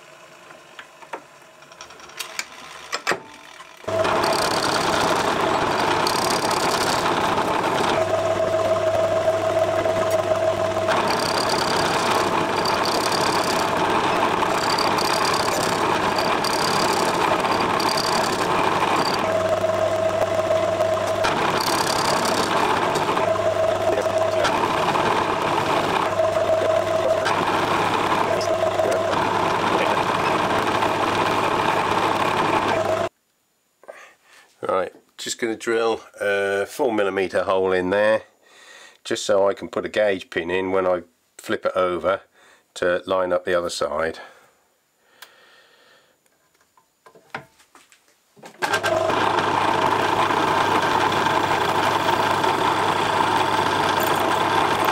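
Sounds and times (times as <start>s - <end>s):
metal lathe running: 3.5s - 33.1s, 48.6s - 54.9s.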